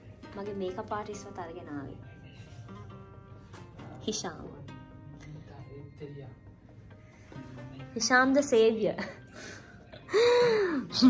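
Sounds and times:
person gasping breathily: 9.4 - 10.9.

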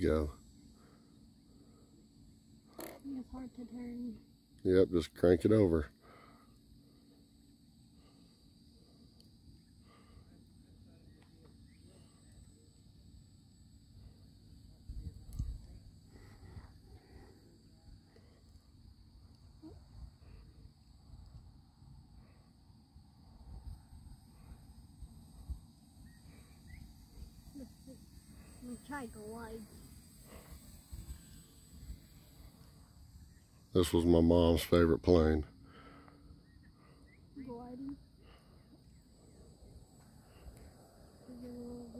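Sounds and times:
high hum of insects: 0.0 - 41.9
wind rumble on microphone: 14.8 - 15.8.

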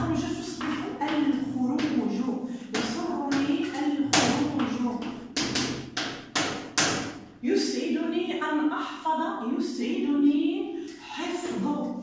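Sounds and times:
chalk tapping on chalkboard: 0.4 - 2.1, 2.7 - 7.2.

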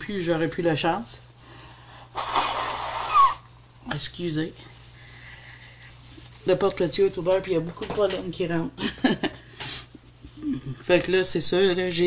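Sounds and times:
person sneezing: 2.1 - 3.5.

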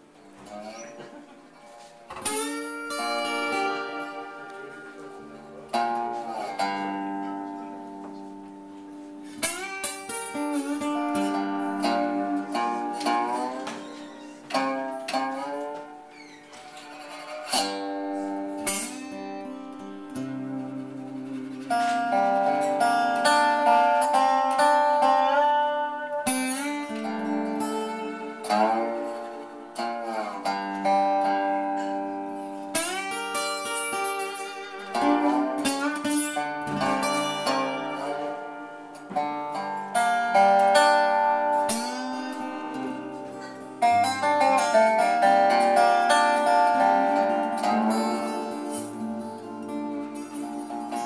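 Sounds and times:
fingerpicked acoustic guitar: 0.0 - 51.0
sliding steel guitar: 0.0 - 51.0.

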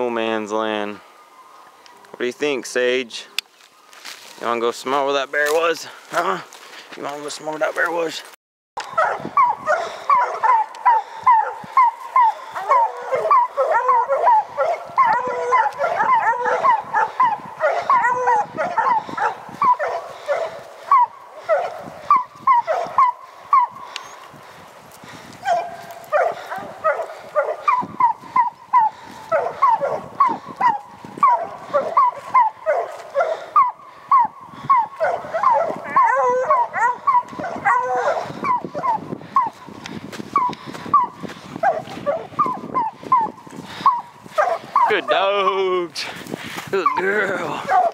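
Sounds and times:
hounds baying: 8.8 - 47.9.

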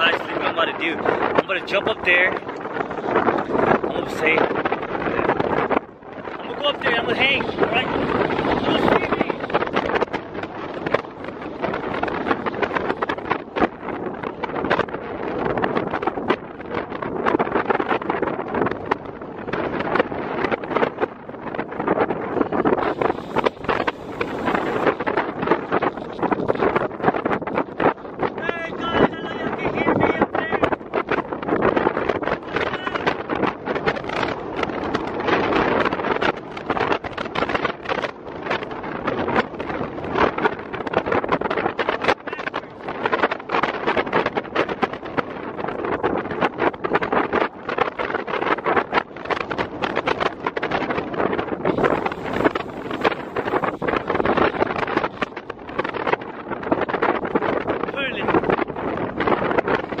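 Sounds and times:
wind buffeting the microphone: 0.0 - 60.0.

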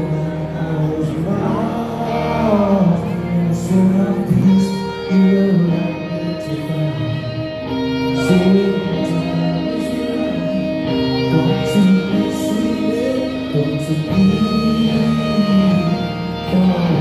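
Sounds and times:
electric guitar: 0.0 - 17.0
rock band playing live: 0.0 - 17.0.

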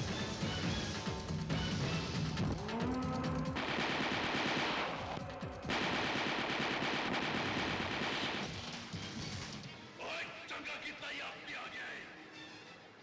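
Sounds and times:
rapid automatic gunfire: 3.5 - 8.9.

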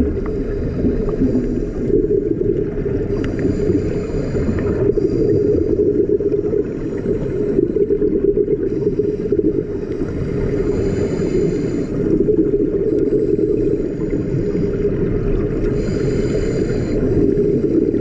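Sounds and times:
underwater rumble: 0.0 - 18.0.

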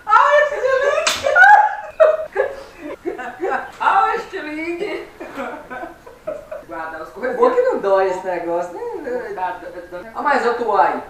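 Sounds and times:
loud laughing: 0.2 - 6.9.

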